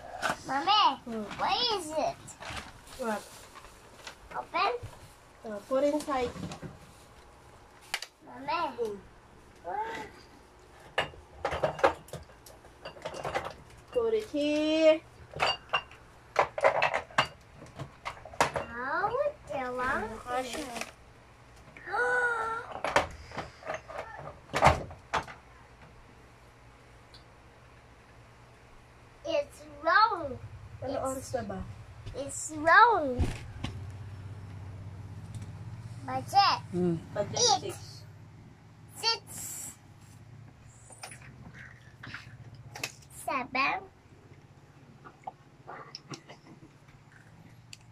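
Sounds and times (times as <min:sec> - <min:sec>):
steady low hum: 0:00.0 - 0:47.9.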